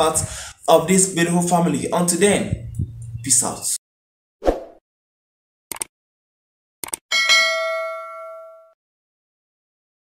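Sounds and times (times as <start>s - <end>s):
bright bell ding: 7.1s - 8.8s.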